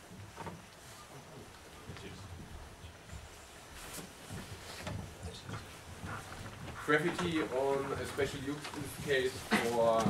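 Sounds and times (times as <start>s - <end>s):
low room noise: 0.0s - 10.0s
man speaking: 6.8s - 10.0s.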